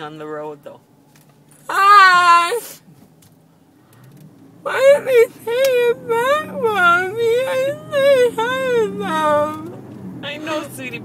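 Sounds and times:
woman whimpering: 0:01.7 - 0:02.8, 0:04.7 - 0:09.8.

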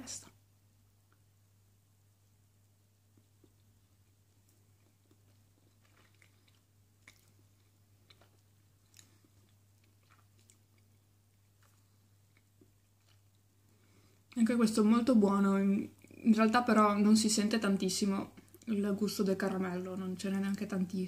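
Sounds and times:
low steady hum: 0:00.0 - 0:21.0
mouth clicks and smacks chewing: 0:03.1 - 0:13.5.

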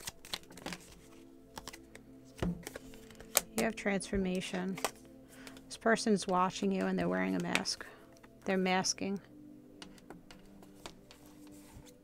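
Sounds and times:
cards clicking and tapping: 0:00.0 - 0:03.7, 0:04.7 - 0:08.4, 0:09.8 - 0:12.0
faint background music: 0:00.0 - 0:12.0.

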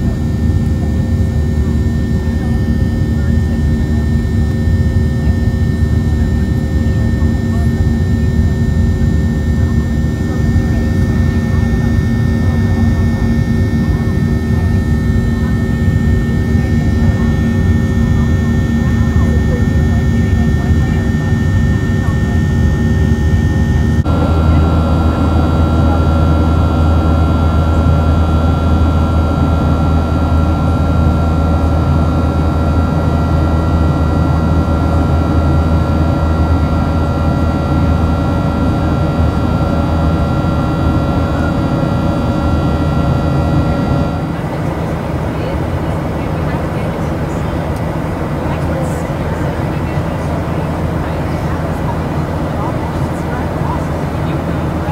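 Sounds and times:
aircraft cabin hum: 0:00.0 - 0:54.9
jet engines rumbling and whining: 0:00.0 - 0:54.9.

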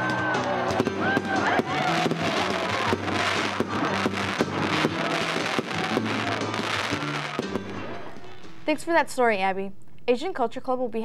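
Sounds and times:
fireworks crackling and banging: 0:00.0 - 0:08.3
background music low notes: 0:00.0 - 0:11.0.

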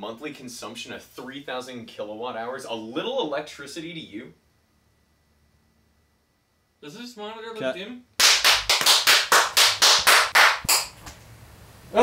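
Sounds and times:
rapid sharp claps: 0:08.2 - 0:11.2.

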